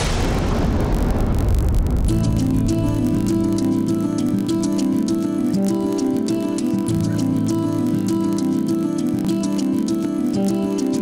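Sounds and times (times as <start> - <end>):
loud low rumble: 0.0 - 3.7.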